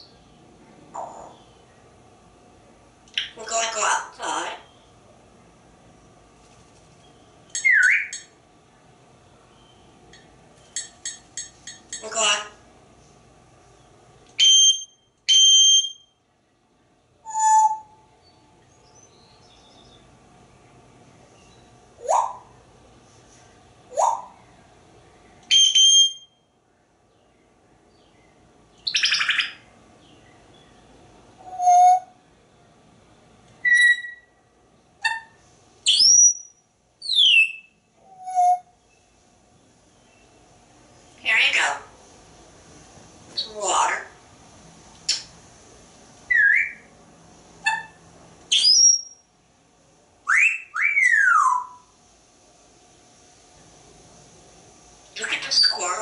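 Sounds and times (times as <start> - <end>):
parrot squawk: 3.2 - 4.7, 12.0 - 12.6, 33.6 - 34.3, 35.0 - 36.1, 47.6 - 49.1, 55.2 - 56.0
parrot whistling and chirping: 7.6 - 8.3, 14.4 - 16.1, 17.2 - 18.0, 22.0 - 22.5, 23.9 - 24.4, 25.5 - 26.4, 28.8 - 29.6, 31.4 - 32.1, 33.6 - 34.4, 35.0 - 38.7, 46.3 - 46.9, 47.6 - 49.2, 50.3 - 51.9, 55.2 - 56.0.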